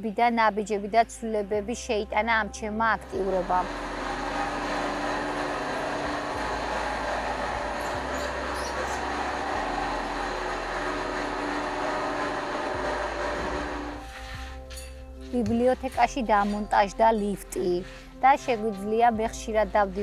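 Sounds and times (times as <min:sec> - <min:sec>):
platform lift rattle and rumble: 0:03.2 - 0:14.4.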